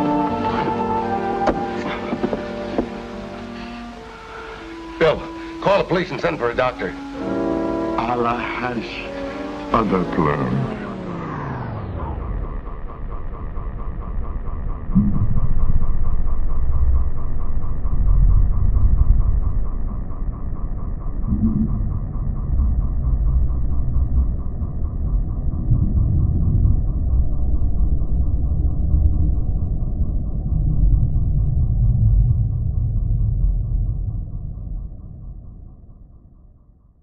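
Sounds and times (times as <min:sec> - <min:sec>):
low muffled rumble: 0:08.1 - 0:36.8.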